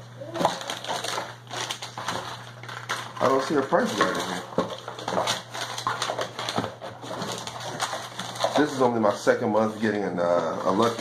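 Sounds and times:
packaging rustling: 0:00.2 - 0:10.0, 0:10.6 - 0:11.0.

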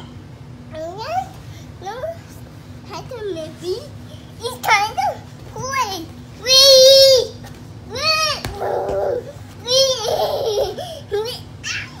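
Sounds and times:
toddler laughing and squealing: 0:08.6 - 0:12.0.

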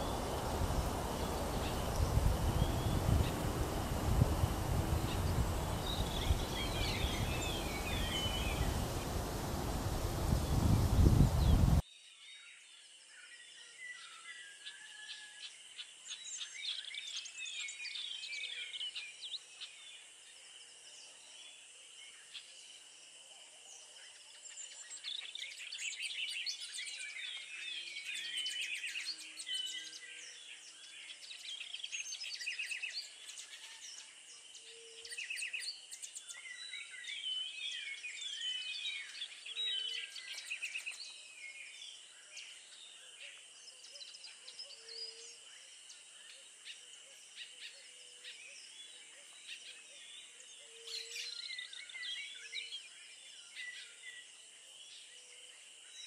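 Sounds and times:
birds chirping and twittering: 0:00.0 - 0:11.8, 0:24.5 - 0:56.0.

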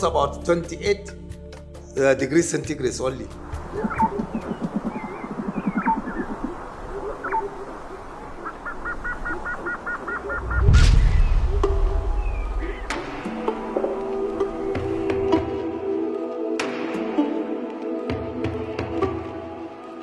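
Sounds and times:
music: 0:00.0 - 0:05.9, 0:10.9 - 0:20.0
fast pulsing low bird call: 0:03.4 - 0:13.1
high bird chirps: 0:03.6 - 0:13.0
low rumble: 0:10.4 - 0:13.0.

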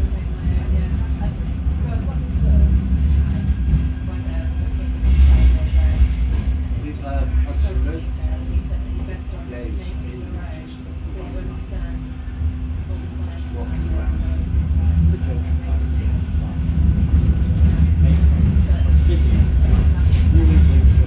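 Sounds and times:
indistinct passenger voices: 0:00.0 - 0:21.0
tram running rumble and hum: 0:00.0 - 0:21.0.

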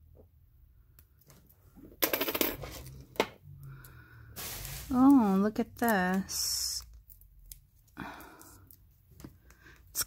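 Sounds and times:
jewelry clattering on wooden table: 0:01.8 - 0:03.4.

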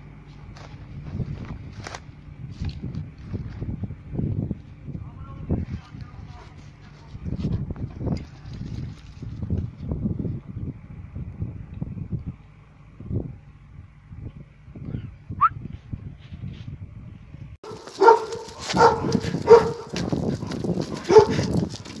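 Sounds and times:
low uneven rumbling: 0:00.0 - 0:22.0
dog barking: 0:17.6 - 0:21.5.

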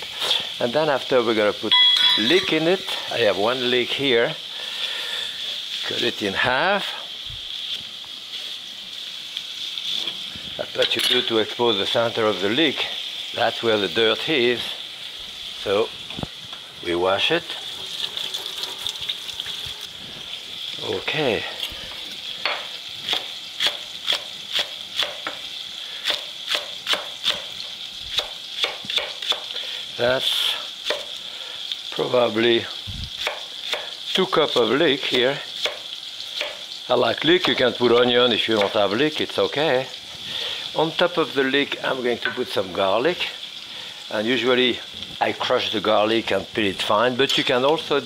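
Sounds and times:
bacon sizzling in a frying pan: 0:00.0 - 0:48.0
knife chopping on wooden board: 0:26.1 - 0:27.4.

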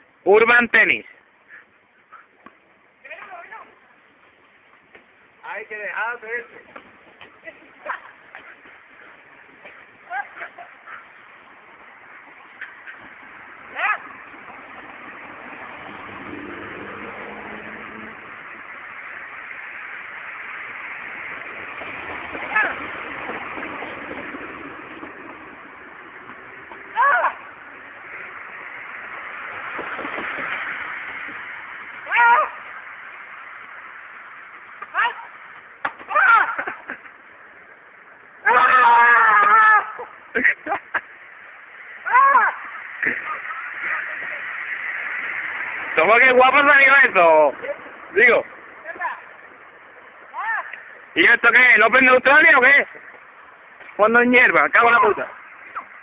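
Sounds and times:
steady background noise: 0:00.0 - 0:56.0.

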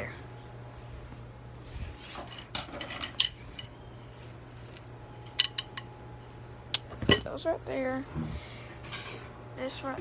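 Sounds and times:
metal objects clinking: 0:02.3 - 0:03.7, 0:05.2 - 0:05.9.

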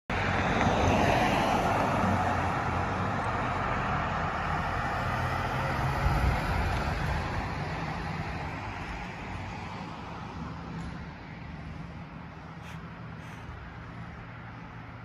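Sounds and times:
vehicle motor rumble with tyre hiss: 0:00.2 - 0:15.0.

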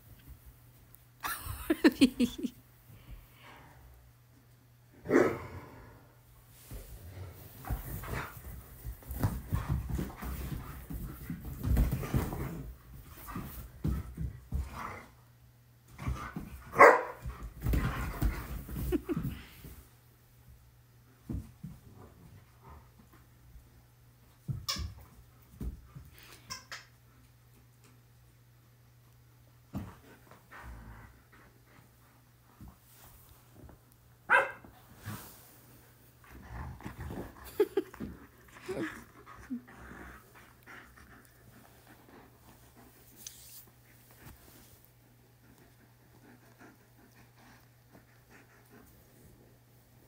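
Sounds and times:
dogs scuffling: 0:06.7 - 0:14.9
dog barking: 0:16.8 - 0:17.2, 0:34.3 - 0:34.6.

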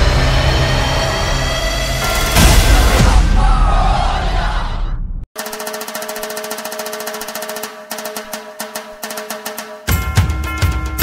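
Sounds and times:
rapid drum roll: 0:05.4 - 0:11.0.

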